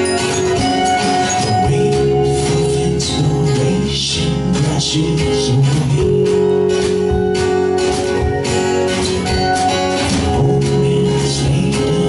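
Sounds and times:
live band with guitars and drums: 0.0 - 12.0.

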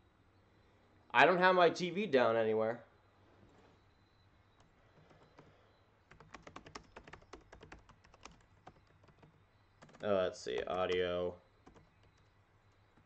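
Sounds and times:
faint keyboard typing: 4.5 - 13.0.

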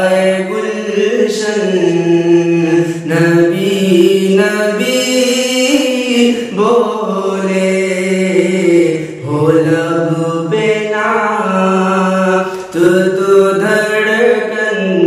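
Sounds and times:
man singing devotional song: 0.0 - 15.0.

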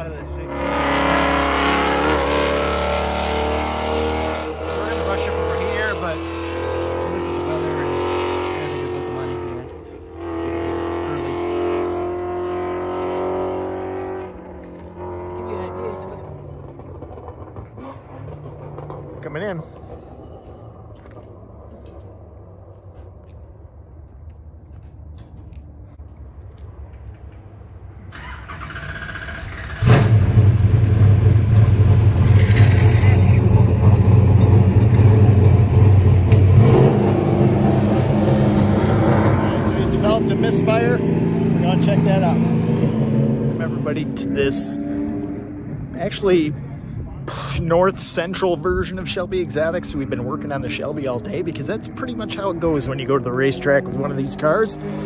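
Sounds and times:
distant car engine racing: 0.0 - 23.6, 26.9 - 55.0
loud low engine rumble: 0.0 - 24.0, 27.7 - 55.0.

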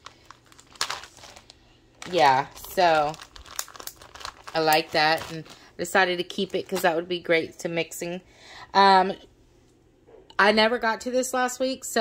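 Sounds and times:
plastic packaging crinkling: 0.0 - 7.1.

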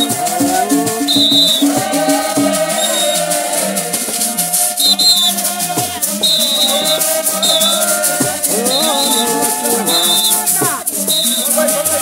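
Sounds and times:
congregation singing: 0.0 - 12.0
hand rattles shaking: 0.0 - 12.0.

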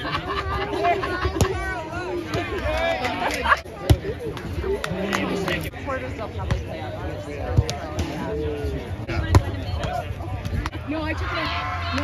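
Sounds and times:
voices of players and onlookers: 0.0 - 12.0.

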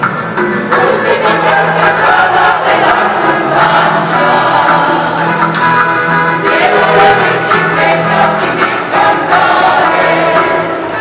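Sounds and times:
mixed choir singing: 0.7 - 11.0.

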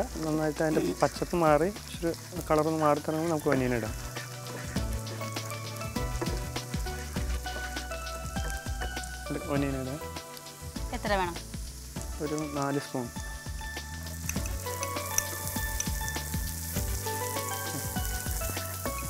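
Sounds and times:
garlic sizzling in a pan: 0.0 - 19.0.

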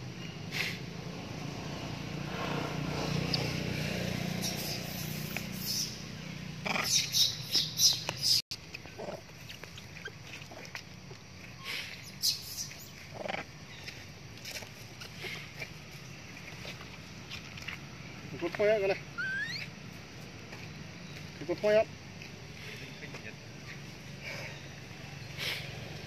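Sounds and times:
macaques squealing: 3.1 - 3.6, 4.3 - 8.4, 11.6 - 13.5, 19.0 - 19.8.

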